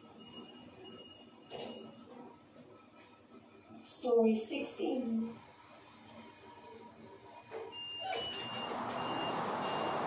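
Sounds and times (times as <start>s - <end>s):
lift doors sliding open: 7.7s - 10.0s.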